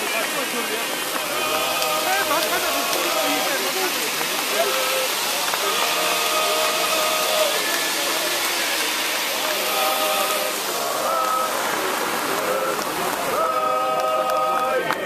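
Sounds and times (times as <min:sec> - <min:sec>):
steady hiss: 0:00.0 - 0:15.0
voices holding drawn-out tones: 0:00.0 - 0:15.0.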